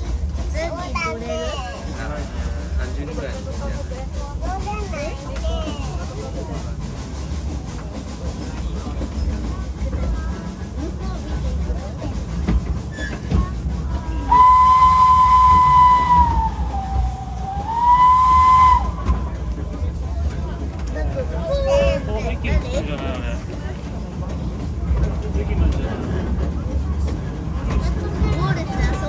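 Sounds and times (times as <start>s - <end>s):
rail clicks: 0.0s - 29.0s
steam locomotive rumbling: 0.0s - 29.0s
steam whistle: 14.3s - 19.2s.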